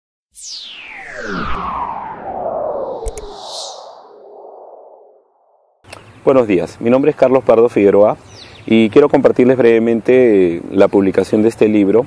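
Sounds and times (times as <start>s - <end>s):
synthesized whoosh with echo: 0.4s - 5.6s
faint outdoor background: 0.4s - 12.0s.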